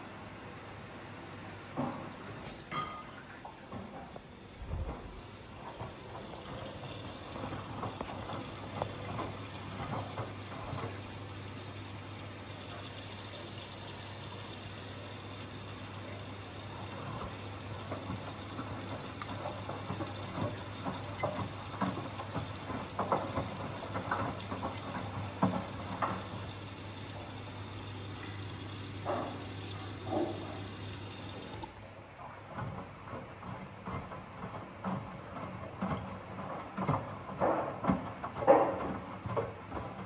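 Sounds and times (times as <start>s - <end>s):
washing machine hum: 0.0s - 40.0s
water jetting into drum: 4.7s - 31.9s.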